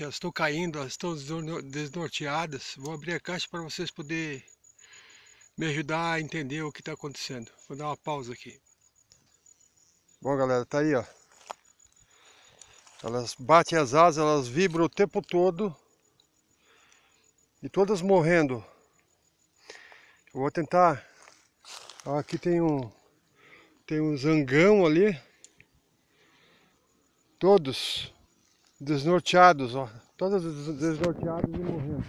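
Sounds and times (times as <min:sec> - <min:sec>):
small faint clicks: 0:09.0 - 0:09.4, 0:11.4 - 0:13.0, 0:14.6 - 0:15.4, 0:16.0 - 0:17.1, 0:25.4 - 0:25.8
man's voice: 0:28.9 - 0:32.0.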